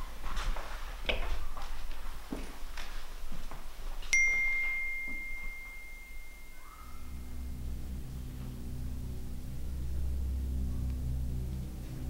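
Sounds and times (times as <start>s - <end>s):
phone message alert ding: 4.2s - 7.1s
low drone: 4.2s - 12.0s.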